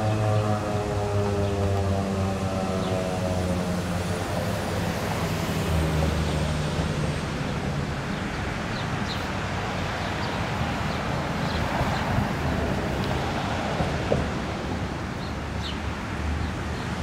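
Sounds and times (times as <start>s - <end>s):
siren winding down: 0.0s - 4.7s.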